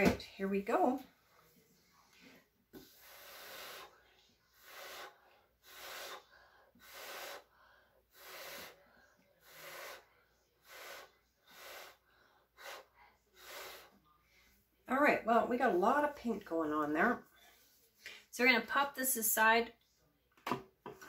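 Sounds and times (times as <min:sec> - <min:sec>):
person blowing puffs: 0:02.9 - 0:04.0, 0:04.6 - 0:07.5, 0:08.1 - 0:08.8, 0:09.4 - 0:12.0, 0:12.6 - 0:14.0.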